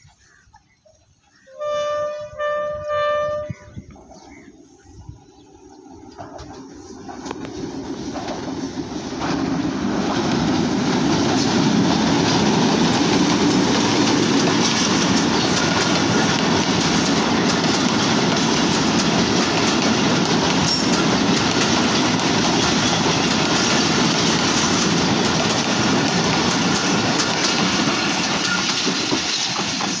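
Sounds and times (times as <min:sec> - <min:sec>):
diesel train passing over bridge: 0:01.7 - 0:30.0
wheels clattering over rail joints: 0:06.0 - 0:30.0.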